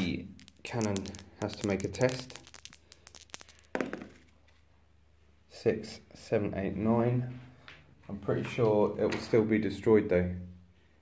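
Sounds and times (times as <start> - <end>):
dice rattling in a hand: 0.0 - 4.3
dice landing on a mat: 0.0 - 4.4.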